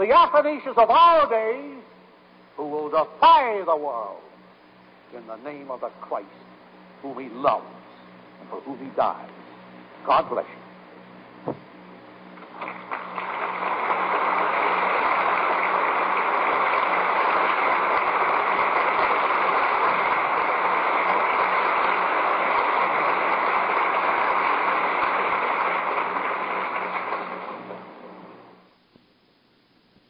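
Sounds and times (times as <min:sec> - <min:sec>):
faint low hum: 0:00.0 - 0:30.0
audience applauding: 0:12.4 - 0:28.4.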